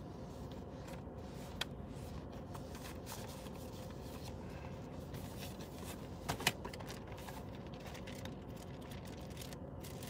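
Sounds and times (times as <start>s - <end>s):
rustling and handling noises: 0.0s - 10.0s
steady low hum: 0.0s - 10.0s.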